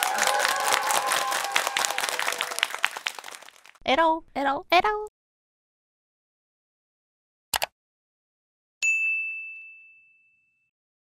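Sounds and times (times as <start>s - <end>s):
high bell-like ding: 8.8s - 10.7s.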